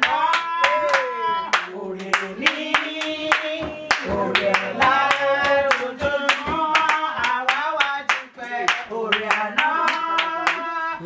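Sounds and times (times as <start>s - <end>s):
hands clapping in rhythm: 0.0s - 11.0s
women singing: 0.0s - 11.0s.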